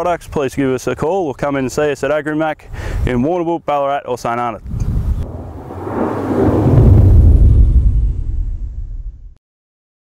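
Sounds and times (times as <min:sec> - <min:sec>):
whoosh and rumble sound effect: 0:05.2 - 0:09.4.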